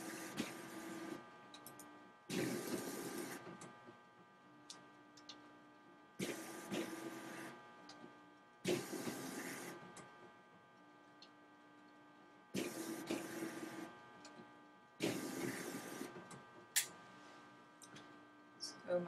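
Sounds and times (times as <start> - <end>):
low steady hum: 0.0 - 19.0
printer mechanism noise: 6.2 - 7.5, 12.6 - 13.8.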